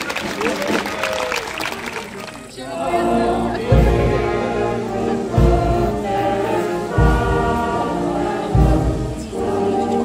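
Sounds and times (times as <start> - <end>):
children's choir singing: 2.6 - 10.0
instrumental accompaniment: 2.9 - 10.0.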